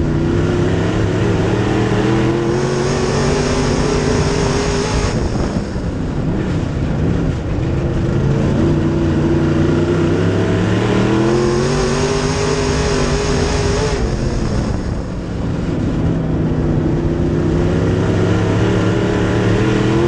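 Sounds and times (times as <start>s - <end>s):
race car engine revving: 0.0s - 20.0s.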